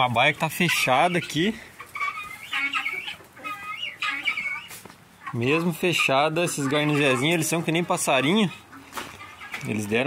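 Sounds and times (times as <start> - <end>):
hen clucking: 0.0 - 10.0.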